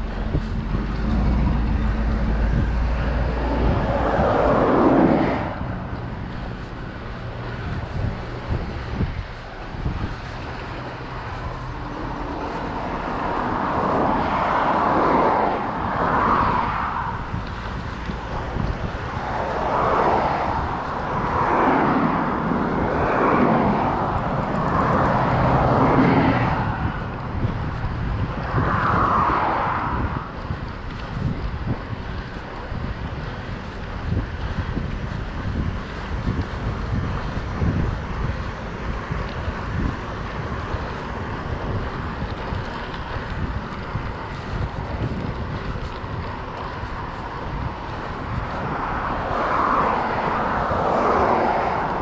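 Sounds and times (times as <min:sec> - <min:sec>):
car engine rumble: 0:00.0 - 0:52.0
vehicles passing: 0:00.0 - 0:52.0.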